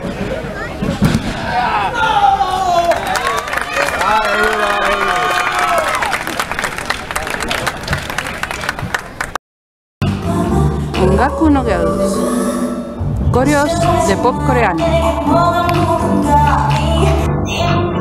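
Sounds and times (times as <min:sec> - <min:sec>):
spectators shouting and cheering: 0:00.0 - 0:09.0
pop music: 0:10.0 - 0:18.0.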